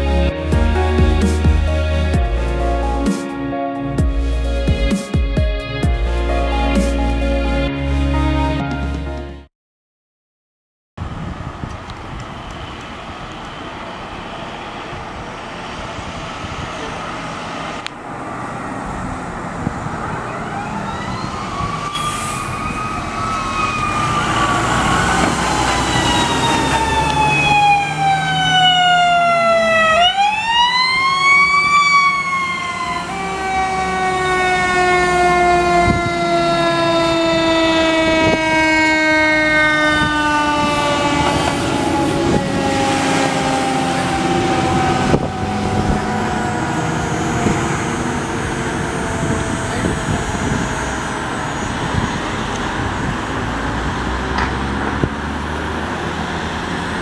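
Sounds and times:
fire truck sirens wailing: 0:00.0 - 0:09.1, 0:11.0 - 0:57.0
truck engines rumbling: 0:00.0 - 0:09.2, 0:11.0 - 0:57.0.

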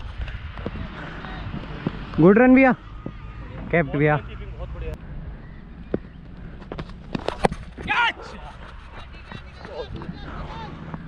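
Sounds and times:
steady outdoor noise: 0:00.0 - 0:11.0.

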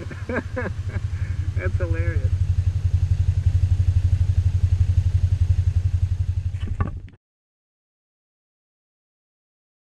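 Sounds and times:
motorcycle engine running: 0:00.0 - 0:07.2.

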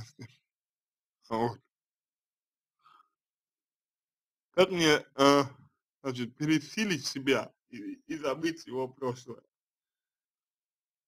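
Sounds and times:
faint short breath: 0:02.8 - 0:03.2.

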